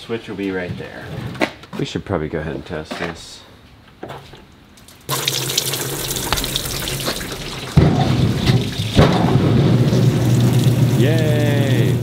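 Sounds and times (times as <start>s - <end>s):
water spraying into metal drum: 5.1s - 12.0s
loud motor hum: 9.4s - 12.0s.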